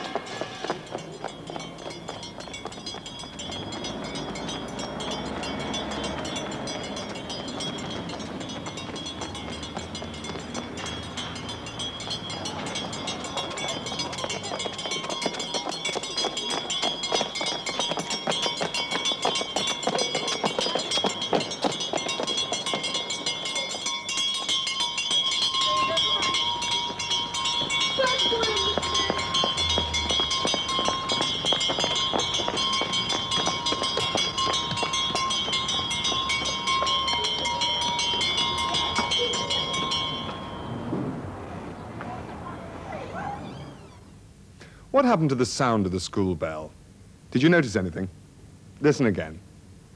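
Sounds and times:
school bell ringing: 0:00.0 - 0:44.3.

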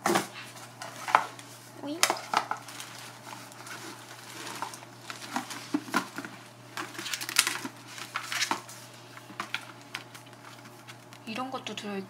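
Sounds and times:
faint paper rustling: 0:00.5 - 0:11.2.

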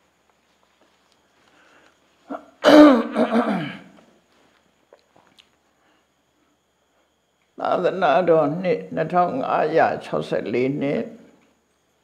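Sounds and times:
man clearing his throat: 0:02.3 - 0:04.0.

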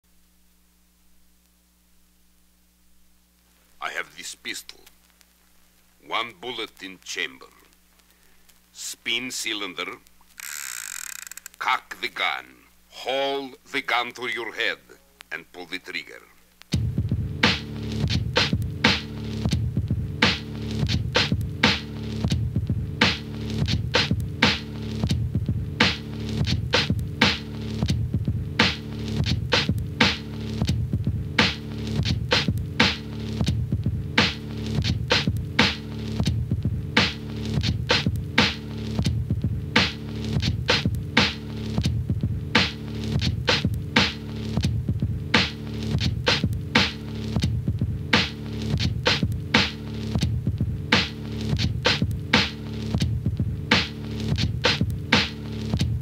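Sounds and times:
funky drum loop: 0:16.0 - 0:56.0.

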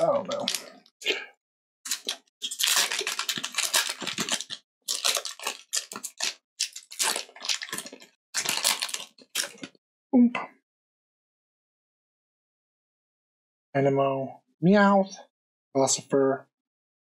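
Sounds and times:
foil wrapper crinkling and tearing: 0:00.0 - 0:01.2, 0:01.9 - 0:09.8.

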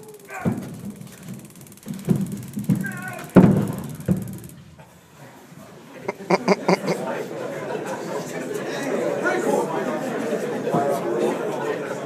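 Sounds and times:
laughter: 0:06.0 - 0:08.4.

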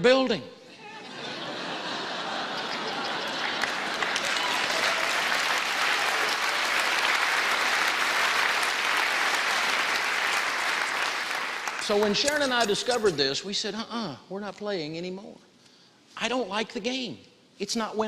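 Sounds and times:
audience applauding: 0:01.9 - 0:13.1.

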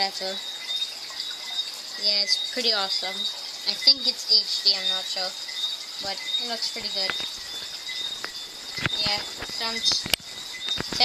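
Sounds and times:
high-pitched chirring: 0:00.0 - 0:11.0
sharp clicks: 0:06.7 - 0:11.0.

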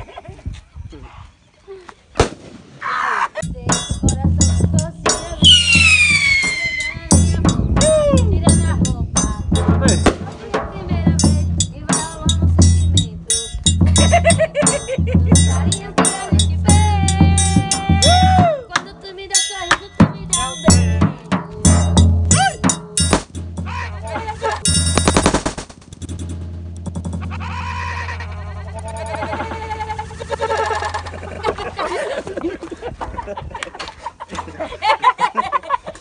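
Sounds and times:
firework bang: 0:02.2 - 0:02.8
voices: 0:02.8 - 0:22.7, 0:23.6 - 0:24.7, 0:27.1 - 0:35.0
rapid triangle strikes: 0:03.4 - 0:31.3
bass drum beats: 0:03.4 - 0:31.9.

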